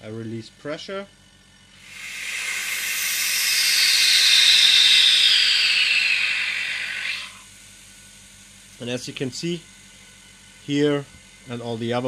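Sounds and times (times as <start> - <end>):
air hissing through release valve: 1.8 - 7.5.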